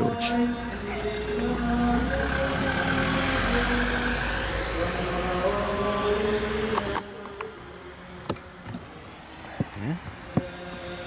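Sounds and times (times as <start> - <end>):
vehicle passing by: 0.4 - 6.8.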